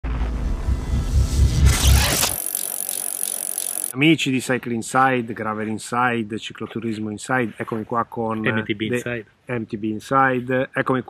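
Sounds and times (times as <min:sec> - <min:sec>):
bicycle freewheel ticking: 0:01.9 - 0:04.0.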